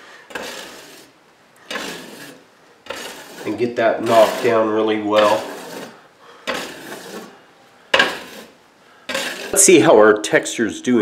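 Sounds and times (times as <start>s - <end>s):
drywall knife scraping wall: 0.0s - 9.9s.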